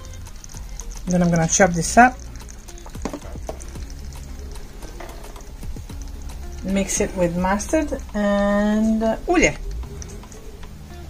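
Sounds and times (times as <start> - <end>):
liquid dripping: 0.0 - 11.0
quiet music: 0.0 - 11.0.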